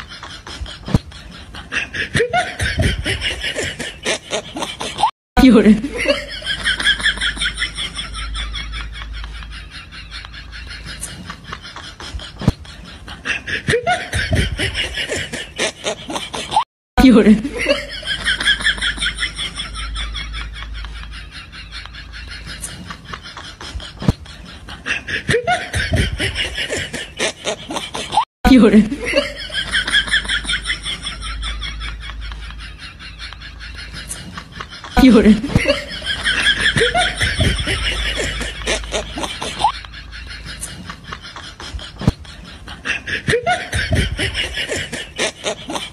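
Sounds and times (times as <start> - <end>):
fast repeated laughter: 0.0 - 5.1, 5.8 - 16.6, 17.3 - 45.9.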